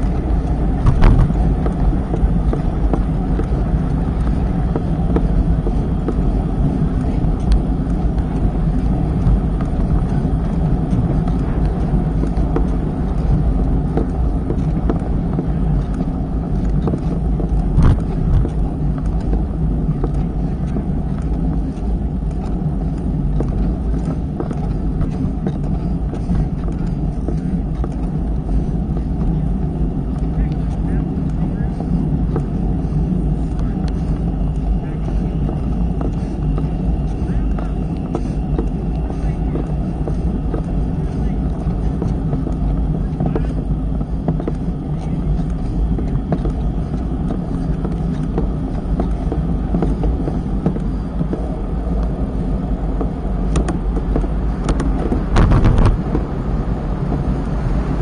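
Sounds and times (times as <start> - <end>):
bicycle tyre noise on road: 0.0 - 58.0
wind rumble on microphone: 0.0 - 58.0.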